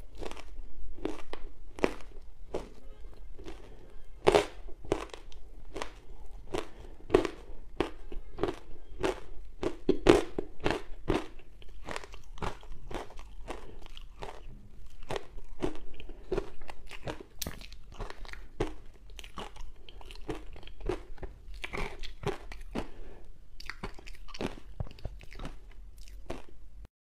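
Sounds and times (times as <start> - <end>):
crunching and chewing ice: 0.0 - 26.6.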